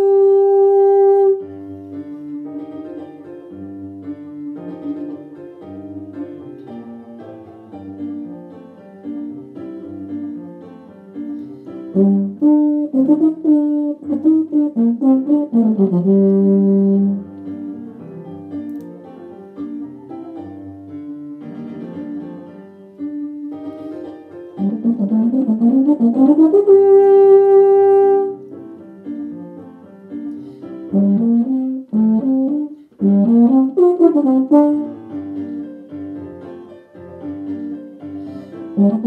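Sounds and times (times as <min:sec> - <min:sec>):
euphonium melody: 0:00.0 - 0:08.8, 0:11.4 - 0:29.6, 0:30.3 - 0:39.0
piano accompaniment: 0:00.0 - 0:39.0.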